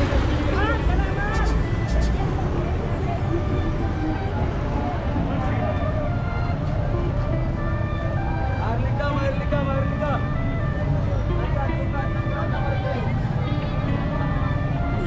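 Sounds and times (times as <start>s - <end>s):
music playing: 0.0s - 15.0s
people's voices: 0.0s - 15.0s
traffic rumble: 0.0s - 15.0s.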